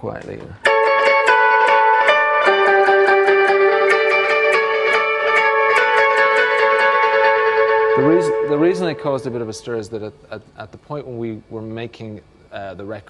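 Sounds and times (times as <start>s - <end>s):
electric guitar with echo: 0.7s - 9.5s.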